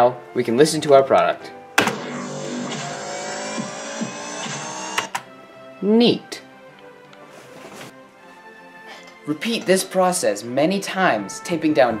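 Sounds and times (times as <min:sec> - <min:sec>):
buzzing electronic dubstep track: 0:01.9 - 0:05.1.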